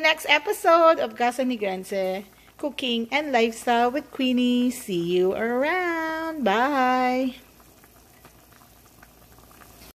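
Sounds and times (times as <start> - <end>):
soup bubbling with pops: 0.0 - 10.0.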